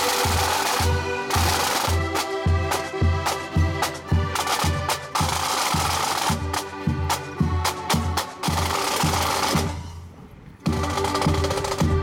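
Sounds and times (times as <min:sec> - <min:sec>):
snare and bass drums: 0:00.0 - 0:09.9, 0:10.6 - 0:12.0
accordion band playing a march: 0:00.0 - 0:12.0.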